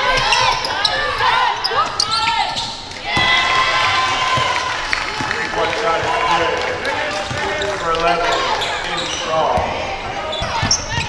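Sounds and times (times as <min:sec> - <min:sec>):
voices calling out: 0:00.0 - 0:11.0
sneaker squeaks on hardwood: 0:01.6 - 0:02.8, 0:10.2 - 0:11.0.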